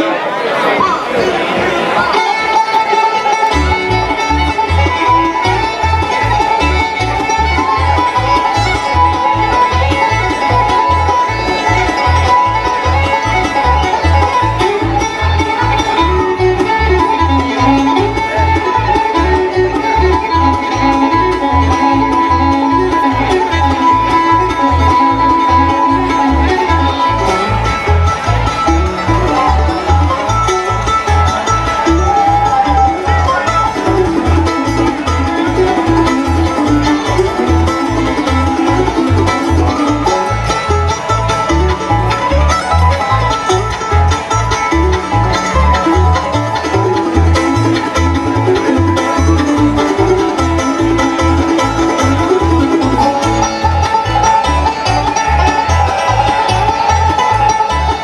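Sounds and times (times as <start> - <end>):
banjo: 0.0 - 58.0
bluegrass band playing: 0.0 - 58.0
fiddle: 0.0 - 58.0
upright bass: 2.1 - 58.0.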